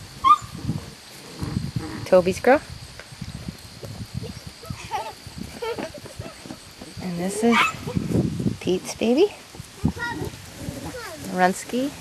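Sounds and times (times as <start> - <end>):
puppies yelping: 0.2 - 0.6.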